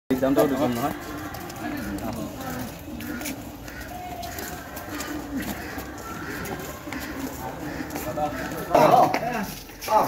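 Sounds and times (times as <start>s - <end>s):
faint background voices: 0.1s - 10.0s
low-pitched bird calls: 1.0s - 8.8s.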